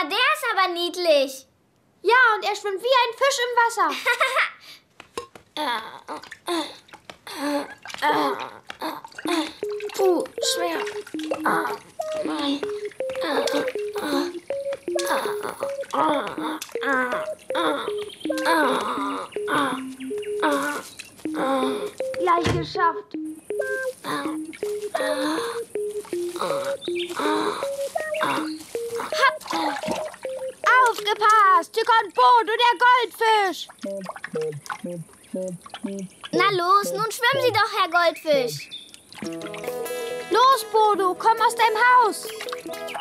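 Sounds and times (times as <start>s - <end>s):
bouncy cartoon tune: 9.1s - 31.6s, 33.8s - 37.7s, 39.2s - 43.0s
high bending voice-like sounds: 9.3s - 31.3s, 33.8s - 37.7s.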